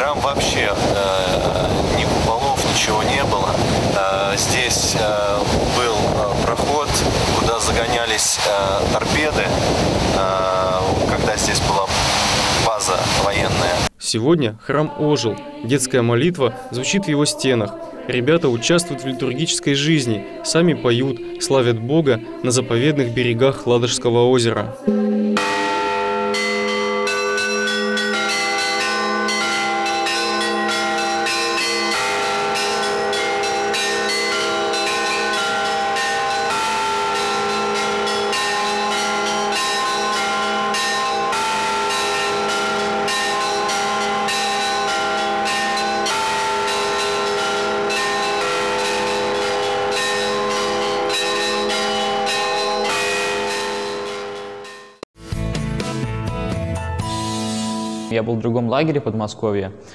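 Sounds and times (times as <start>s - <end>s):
church bells pealing: 0.0s - 9.8s, 24.8s - 55.0s.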